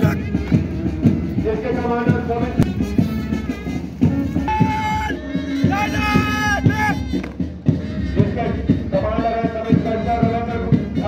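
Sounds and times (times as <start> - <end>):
marching band music: 0.0 - 11.0
marching drumbeat: 0.0 - 11.0.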